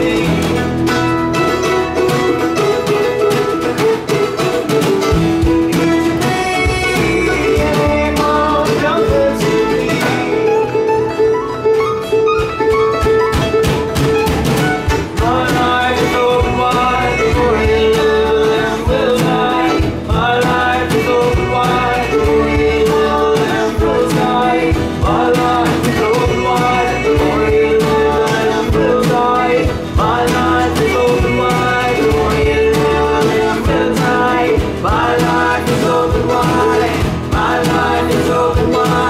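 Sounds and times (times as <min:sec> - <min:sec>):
voices singing together: 0:00.0 - 0:01.0, 0:05.7 - 0:10.6, 0:14.9 - 0:39.0
drum: 0:00.0 - 0:10.5, 0:12.5 - 0:39.0
guitars: 0:00.0 - 0:39.0.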